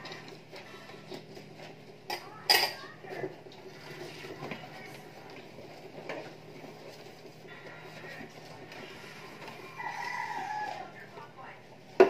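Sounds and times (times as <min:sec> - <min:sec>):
rooster crowing: 0:09.5 - 0:11.0.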